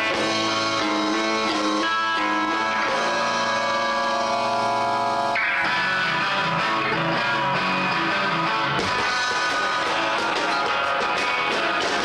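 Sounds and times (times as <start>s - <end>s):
electric bass: 0.0s - 12.0s
electric guitar: 0.0s - 12.0s.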